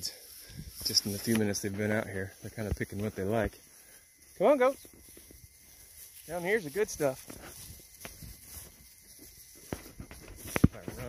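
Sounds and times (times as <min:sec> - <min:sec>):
faint footsteps through grass: 0:00.0 - 0:11.0.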